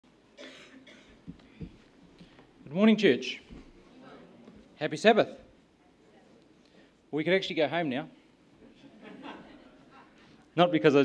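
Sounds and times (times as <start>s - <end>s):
man coughing: 0.4s - 1.2s.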